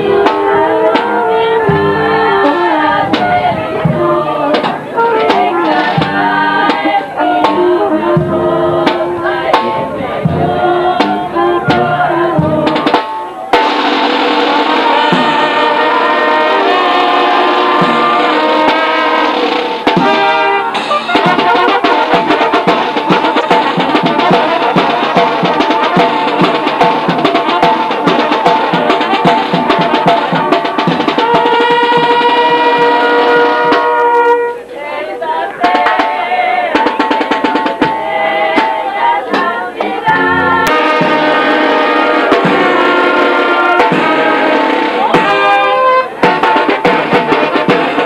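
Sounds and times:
brass band playing: 0.0 - 48.0
steady drum beat: 0.0 - 48.0
trumpets: 0.0 - 48.0.

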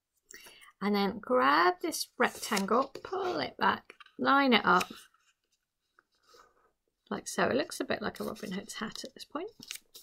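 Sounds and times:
paper rustle: 8.1 - 10.0.

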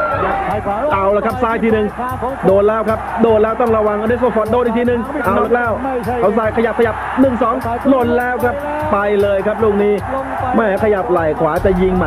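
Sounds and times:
music with steady beat: 0.0 - 12.0
man talking: 0.2 - 12.0.

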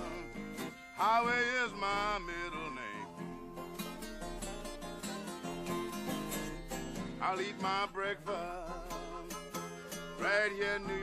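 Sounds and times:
harmonica bending notes: 0.0 - 11.0
strummed acoustic guitar: 0.0 - 11.0.

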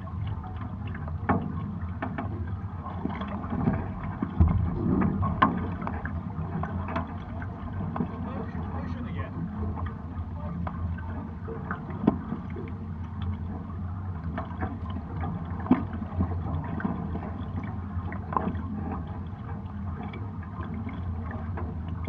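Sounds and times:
water slapping boat hulls: 0.0 - 22.0.

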